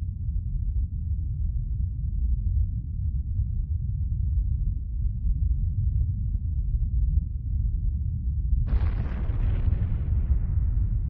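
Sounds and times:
explosion rumble and hiss: 8.7s - 11.0s.

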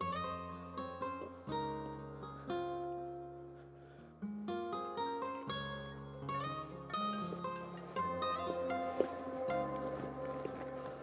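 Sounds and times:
acoustic guitar plucking chords: 4.4s - 11.0s.

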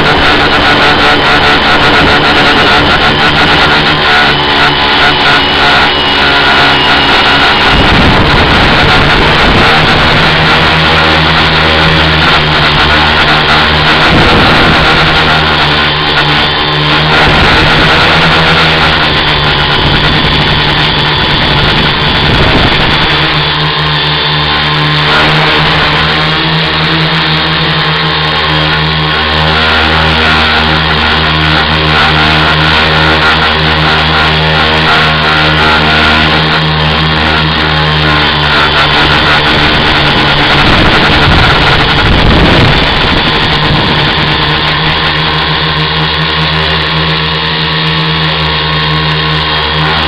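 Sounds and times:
drone motors and propellers: 0.0s - 50.0s.

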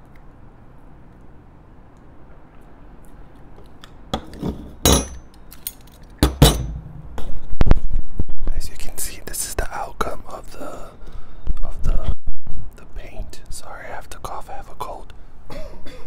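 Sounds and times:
metal spoons clinking: 4.2s - 7.2s.

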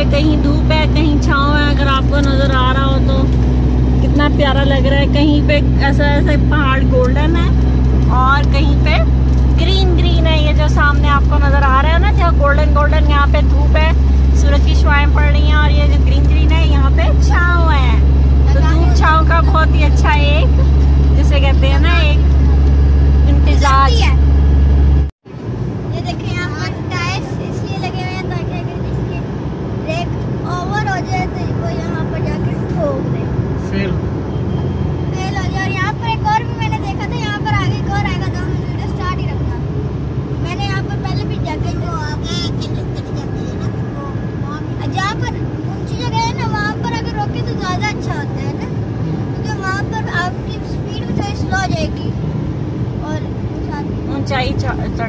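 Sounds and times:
indistinct voices talking: 0.0s - 25.1s, 25.9s - 55.0s
car road and engine rumble: 0.0s - 55.0s.

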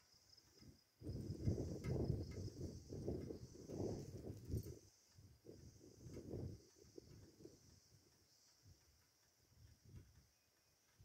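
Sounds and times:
faint high insect drone: 0.0s - 11.0s
wind buffeting microphone: 0.6s - 10.3s.

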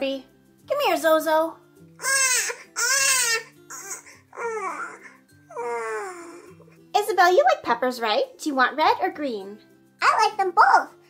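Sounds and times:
soft background music: 0.0s - 11.0s
baby crying: 2.0s - 6.6s.

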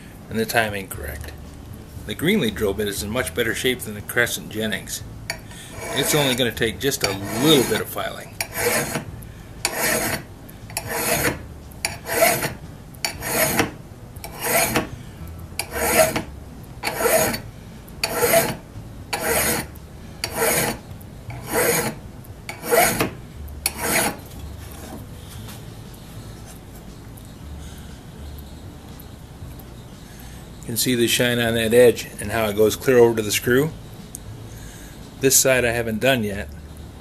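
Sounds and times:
hand file strokes on steel: 5.3s - 14.9s, 15.6s - 25.0s.

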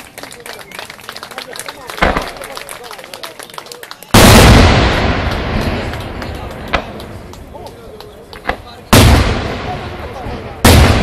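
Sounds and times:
firework loud bang: 4.2s - 7.2s, 8.4s - 11.0s.

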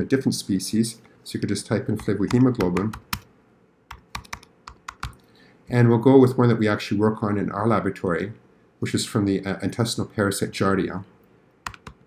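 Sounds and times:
computer keyboard typing: 2.0s - 3.3s, 3.9s - 5.2s, 11.6s - 12.0s.

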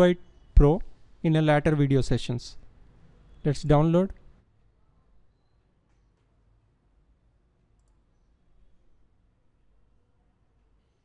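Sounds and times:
computer mouse click: 7.7s - 8.2s.

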